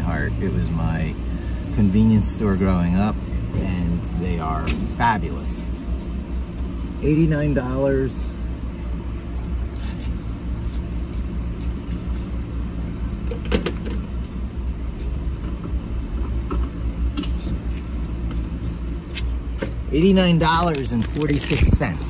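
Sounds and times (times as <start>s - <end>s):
vehicle engine idling: 0.0s - 22.0s.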